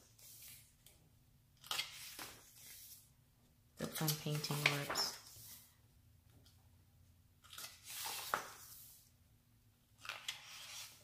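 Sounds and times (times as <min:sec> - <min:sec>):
book pages turning: 0:00.0 - 0:01.0, 0:01.6 - 0:03.1, 0:03.8 - 0:05.7, 0:07.4 - 0:09.1, 0:09.9 - 0:11.0.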